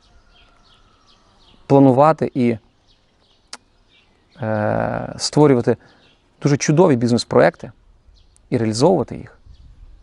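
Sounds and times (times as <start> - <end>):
man's drawn-out hesitation sound: 4.4 - 5.8.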